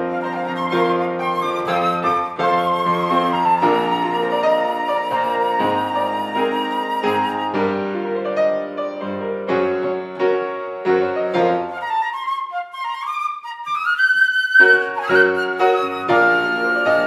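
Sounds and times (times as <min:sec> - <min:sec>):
flute playing: 0:00.0 - 0:08.1, 0:11.4 - 0:17.0
grand piano playing: 0:00.0 - 0:17.0.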